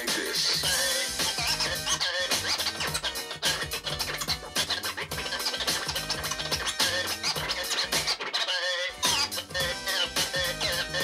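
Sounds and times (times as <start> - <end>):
backing beat: 0.0 - 11.0
vinyl scratching: 0.0 - 11.0.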